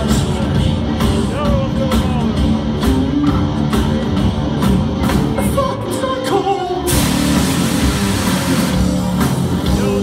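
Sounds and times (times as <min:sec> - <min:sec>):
drums: 0:00.0 - 0:10.0
electric guitars: 0:00.0 - 0:10.0
person singing: 0:09.6 - 0:10.0.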